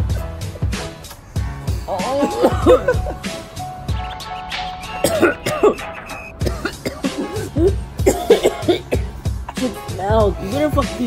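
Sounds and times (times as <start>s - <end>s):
background music: 0.0s - 11.0s
woman coughing and gagging: 1.9s - 3.3s, 5.0s - 9.8s
man laughing: 1.9s - 3.4s.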